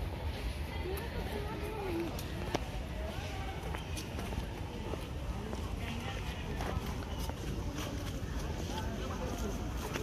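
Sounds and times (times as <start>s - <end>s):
footsteps on brick path: 0.0s - 10.0s
people chattering: 0.0s - 10.0s.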